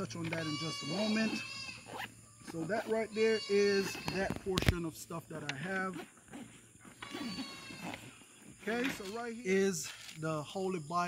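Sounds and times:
farm animal bleating: 0:00.0 - 0:04.6, 0:05.7 - 0:09.6.

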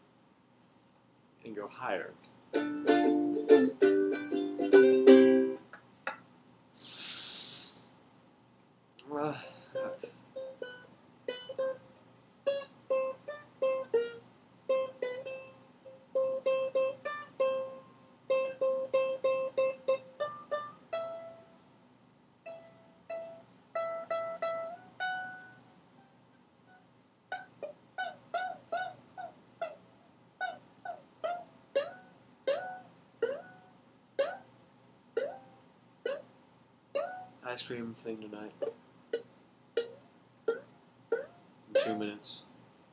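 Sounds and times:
ukulele picked notes: 0:02.5 - 0:05.7, 0:09.8 - 0:21.5, 0:22.5 - 0:25.6, 0:26.7 - 0:29.8, 0:30.4 - 0:34.5, 0:35.2 - 0:35.5, 0:36.9 - 0:37.4, 0:38.6 - 0:42.4.

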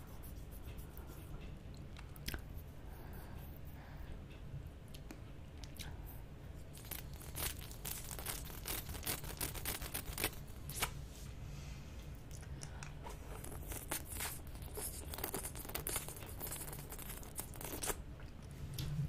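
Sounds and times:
wet licking and sucking on lollipop: 0:06.6 - 0:10.9, 0:12.2 - 0:18.4.

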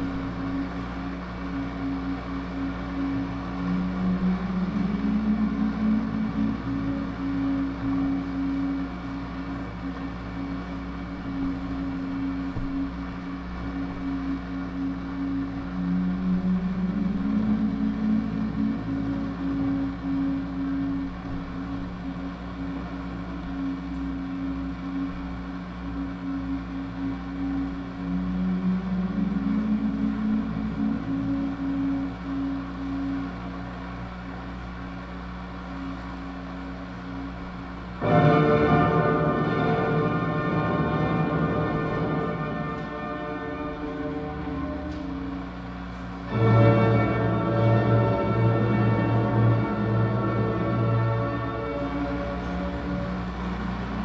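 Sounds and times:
bright cluster of tones: 0:00.0 - 0:54.0
electronic drone music: 0:00.0 - 0:54.0.

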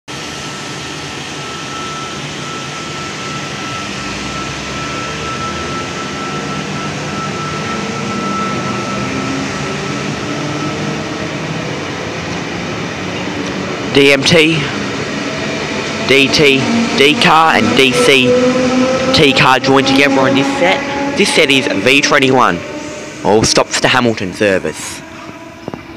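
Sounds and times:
electric train running past: 0:00.1 - 0:25.9
thin high whine: 0:00.1 - 0:25.9.

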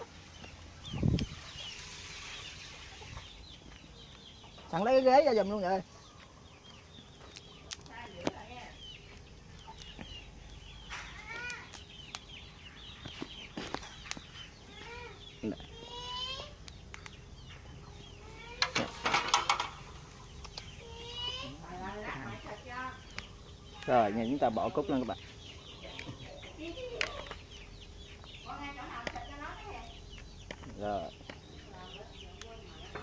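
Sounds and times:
chickens clucking: 0:00.0 - 0:33.0
wire grill rack clicks: 0:18.6 - 0:20.6.

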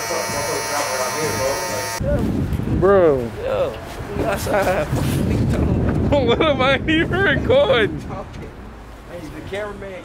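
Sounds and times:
electric hair clippers buzzing: 0:00.0 - 0:02.0.

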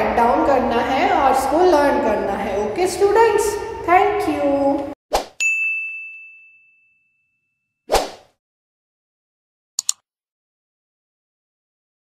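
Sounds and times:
bright ding: 0:05.4 - 0:07.6.

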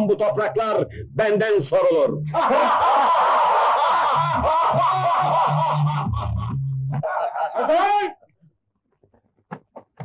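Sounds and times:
man laughing loudly: 0:02.3 - 0:08.0
men laughing mockingly: 0:02.3 - 0:08.0.

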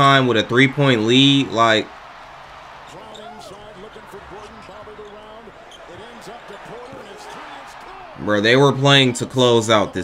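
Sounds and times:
arena crowd noise: 0:00.0 - 0:10.0
sneaker squeaks: 0:03.0 - 0:03.5, 0:04.6 - 0:06.2.

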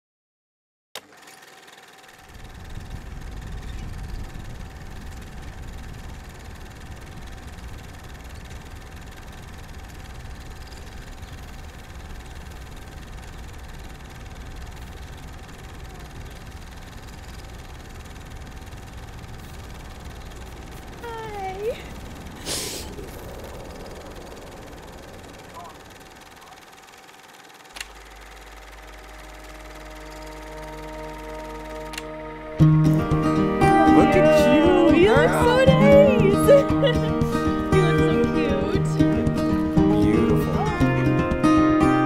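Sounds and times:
low engine-like rumble: 0:02.2 - 0:42.0.

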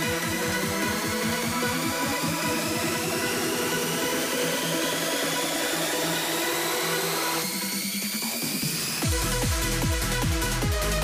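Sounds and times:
pulsing electronic beat: 0:00.0 - 0:11.0.

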